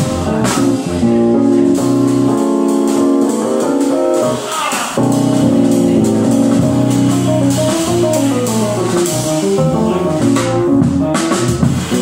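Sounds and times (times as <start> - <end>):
drum kit played with sticks: 0.0 - 12.0
electric keyboard melody: 0.0 - 12.0.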